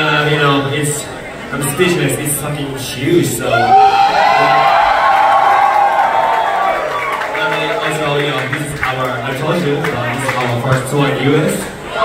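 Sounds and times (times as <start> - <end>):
long held shout: 3.5 - 7.2
crowd cheering and whooping: 3.5 - 8.5.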